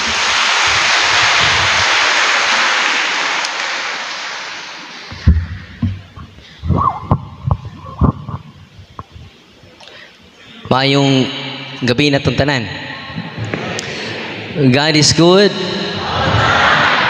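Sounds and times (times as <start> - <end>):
audience applauding: 0.0 - 5.3, 16.0 - 17.0
microphone handling thumps: 5.1 - 9.3.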